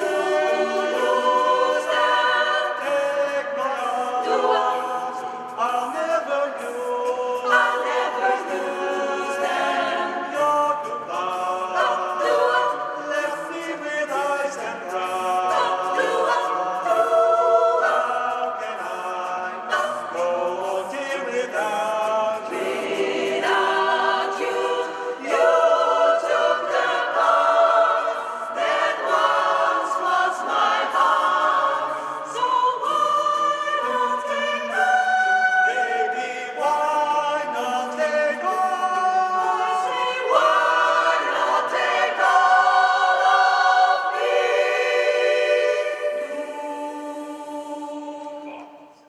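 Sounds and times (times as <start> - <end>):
choir singing a cappella: 0.0 - 49.0.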